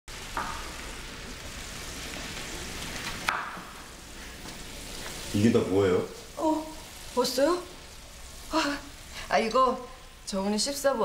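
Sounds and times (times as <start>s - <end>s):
food frying in a pan: 0.1s - 11.0s.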